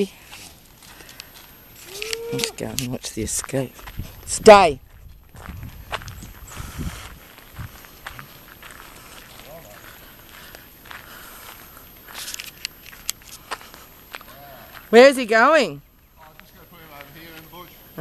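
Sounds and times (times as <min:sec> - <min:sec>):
footsteps on gravel: 0:00.0 - 0:15.6.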